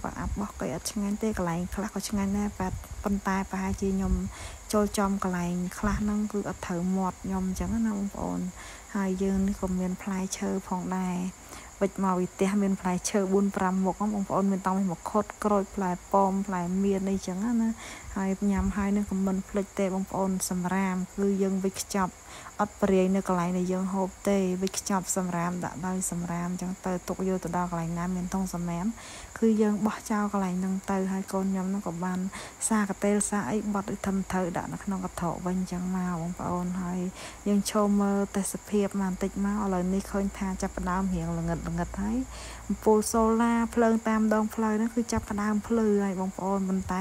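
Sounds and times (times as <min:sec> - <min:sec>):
crickets trilling: 0:00.0 - 0:47.0
person talking: 0:00.0 - 0:47.0.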